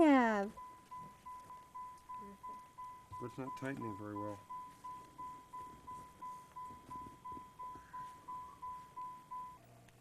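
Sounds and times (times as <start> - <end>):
car warning chime beeping: 0.0 - 10.0.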